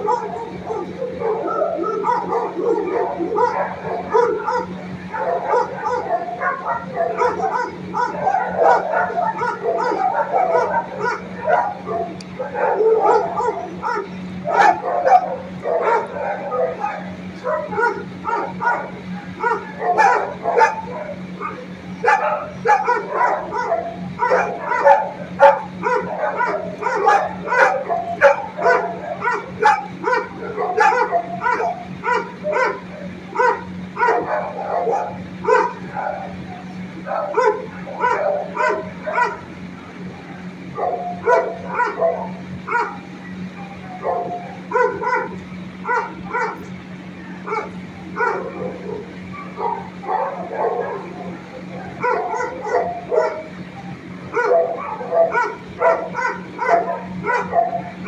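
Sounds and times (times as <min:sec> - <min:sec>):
dogs barking: 0:00.0 - 0:58.0
steady low hum: 0:00.0 - 0:58.0.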